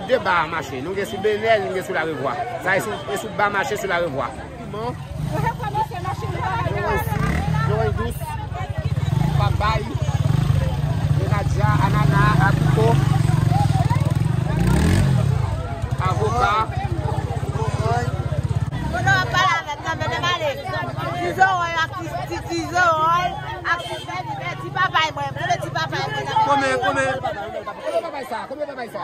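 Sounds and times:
voices chattering: 0:00.0 - 0:29.0
motorcycle engine revving: 0:04.6 - 0:27.3.

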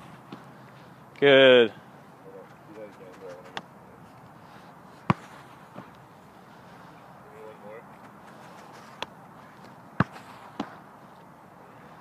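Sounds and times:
soccer ball struck sharply: 0:05.1 - 0:05.9, 0:10.0 - 0:10.8.

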